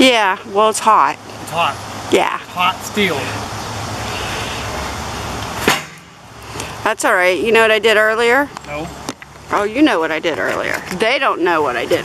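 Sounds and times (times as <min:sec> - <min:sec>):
steady rushing noise: 0:00.0 - 0:07.0
sharp knock of log: 0:05.6 - 0:06.1.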